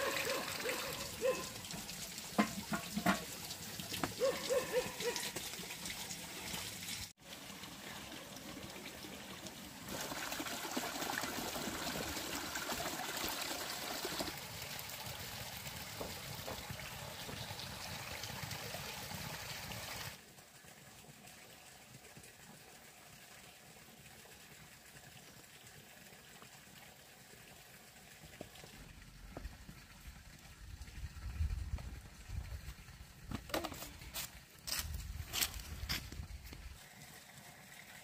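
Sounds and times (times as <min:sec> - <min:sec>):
water trickling: 0:00.0 - 0:38.0.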